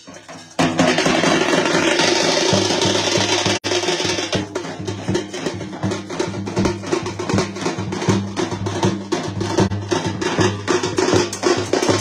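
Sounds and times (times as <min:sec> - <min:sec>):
drums beaten in fast beat: 0:00.0 - 0:12.0.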